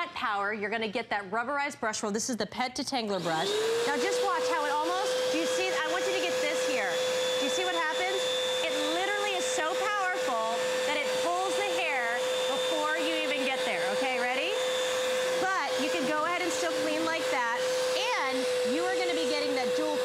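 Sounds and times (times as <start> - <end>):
vacuum cleaner whining: 3.2 - 20.0
vacuum tool drawn across upholstery: 3.4 - 20.0.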